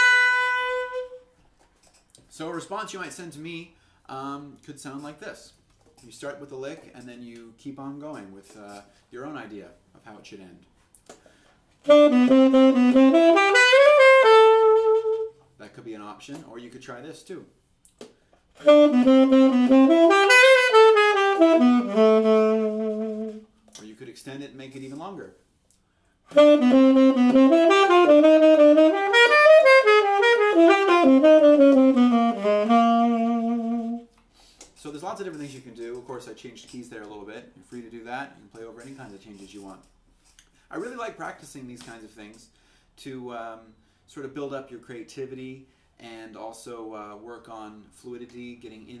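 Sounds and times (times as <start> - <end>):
tenor saxophone jazz solo: 0.0 - 1.4, 11.8 - 15.5, 18.5 - 23.7, 26.3 - 34.2.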